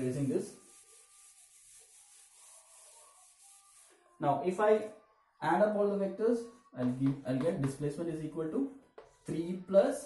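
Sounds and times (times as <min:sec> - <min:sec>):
eraser rubbing chalk off blackboard: 0:00.2 - 0:04.0.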